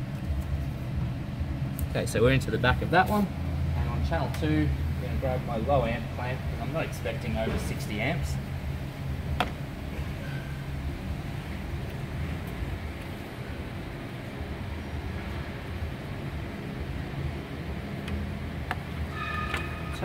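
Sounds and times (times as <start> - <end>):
low machinery hum: 0.0 - 20.0.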